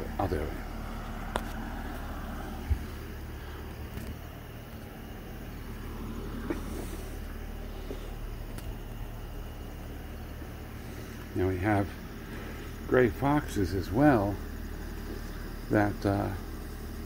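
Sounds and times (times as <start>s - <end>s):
faint hiss: 0.0s - 17.0s
low background hum: 0.0s - 17.0s.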